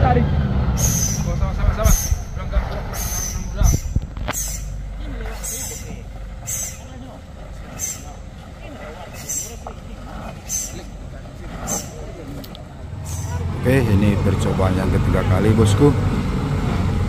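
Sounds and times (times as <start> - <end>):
diesel truck engines running: 0.0 - 17.0
short high hisses: 0.8 - 2.3, 2.9 - 4.8, 5.4 - 6.8, 13.0 - 13.4.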